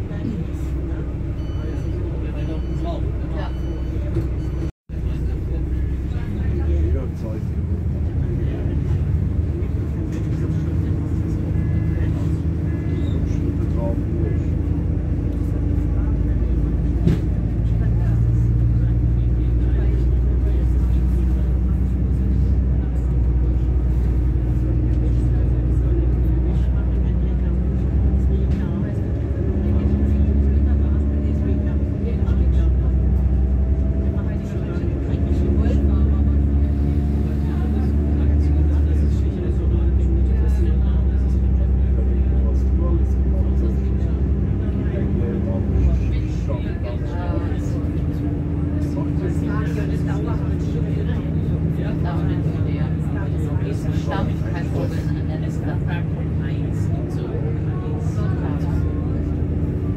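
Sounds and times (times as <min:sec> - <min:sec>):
railcar engine drone: 0:00.0 - 0:59.9.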